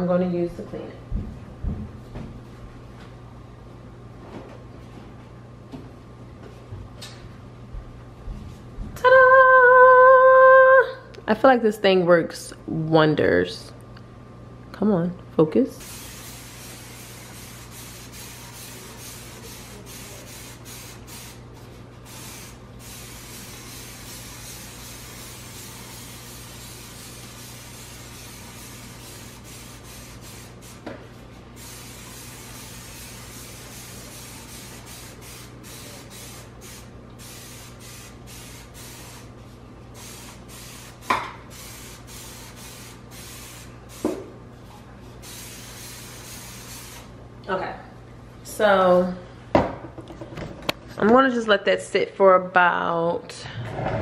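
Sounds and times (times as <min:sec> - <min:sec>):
steady low hum: 0:00.0 - 0:54.0
spray bottle hissing: 0:15.8 - 0:30.9, 0:31.6 - 0:39.3, 0:40.0 - 0:44.2, 0:45.2 - 0:47.1.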